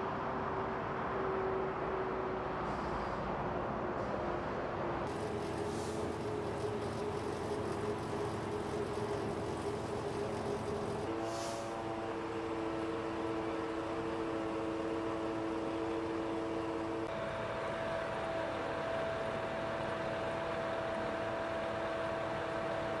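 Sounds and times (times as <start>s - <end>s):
truck engines droning: 0.0s - 23.0s
brief hiss: 5.1s - 7.1s, 10.6s - 11.8s.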